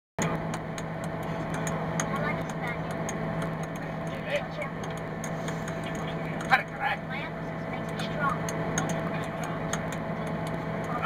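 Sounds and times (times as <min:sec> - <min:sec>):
bus engine hum: 0:00.2 - 0:11.0
plastic ball clicking off paddles: 0:07.9 - 0:11.0.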